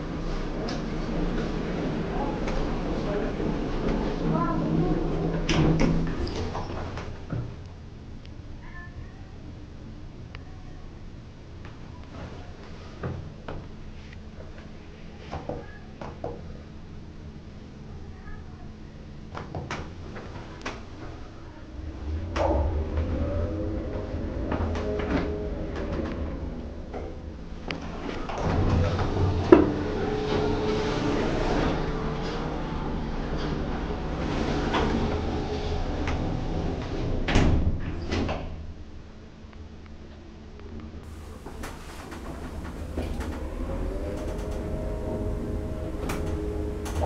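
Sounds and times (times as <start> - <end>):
elevator machinery hum: 0.0 - 8.2, 21.5 - 37.3, 41.0 - 47.0
elevator doors clunking shut: 41.1 - 47.0
faint electronic tone: 41.2 - 47.0.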